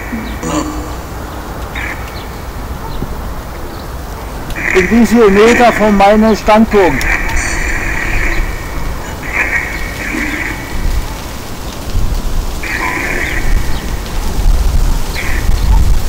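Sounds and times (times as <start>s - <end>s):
static hiss bursts: 0.0s - 16.0s
wind rumble on microphone: 0.0s - 16.0s.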